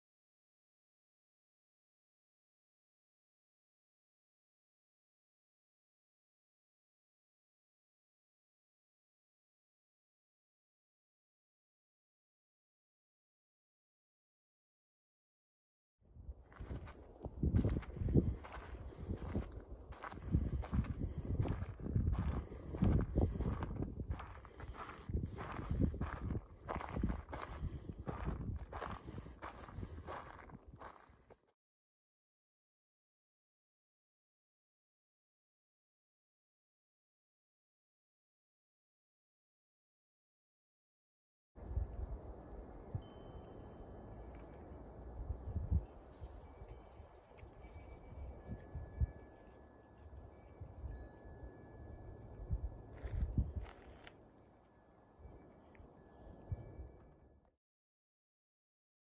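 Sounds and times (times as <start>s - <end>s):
low rumbles on microphone: 16.2s - 30.6s
footsteps on dirt path: 16.5s - 31.4s, 52.9s - 54.2s.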